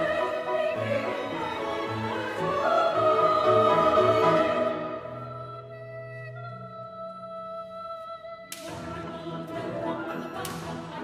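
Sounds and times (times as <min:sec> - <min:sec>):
choir and orchestra: 0:00.0 - 0:11.0.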